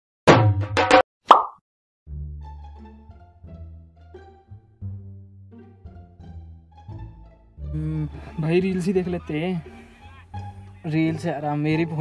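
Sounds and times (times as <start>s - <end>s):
music with quick hits: 0.3s - 1.0s
plop sound effect: 1.3s - 1.6s.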